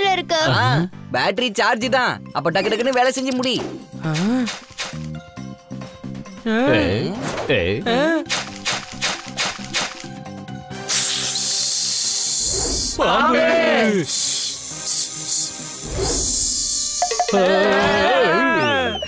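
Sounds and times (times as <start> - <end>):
cartoon snake hissing: 10.8 - 13.0, 13.8 - 17.0
cartoon soundtrack: 16.2 - 19.0
quick rhythmic beat: 16.8 - 17.8.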